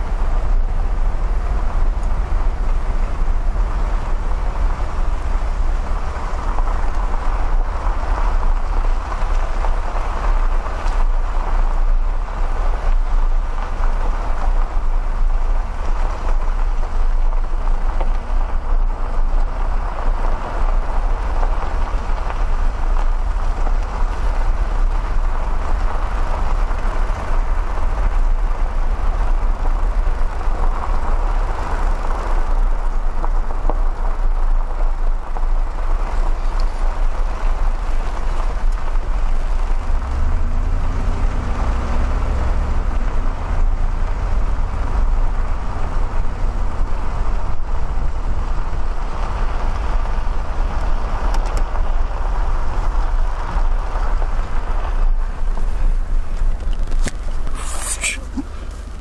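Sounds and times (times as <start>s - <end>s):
car engine drone: 0.0s - 59.0s
tyre road noise: 0.0s - 59.0s.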